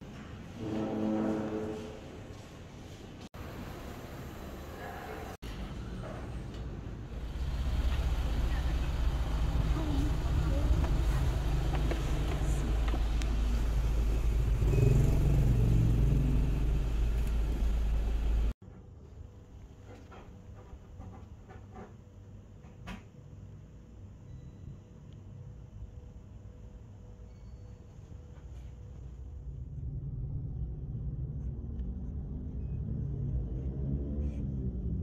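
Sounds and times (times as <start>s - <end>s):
vehicle road and engine rumble: 3.2s - 18.6s.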